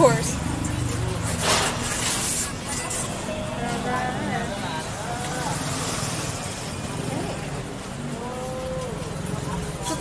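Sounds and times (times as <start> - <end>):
passing cars and motorbikes: 0.0 - 10.0
people talking: 0.0 - 10.0.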